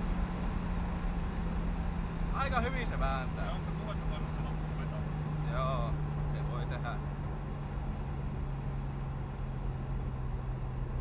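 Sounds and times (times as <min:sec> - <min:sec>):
car engine drone from inside cabin: 0:00.0 - 0:11.0.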